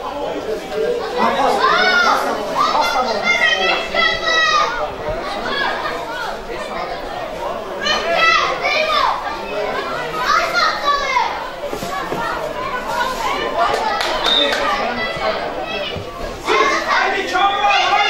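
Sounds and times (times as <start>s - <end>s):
children shouting: 0.0s - 18.0s.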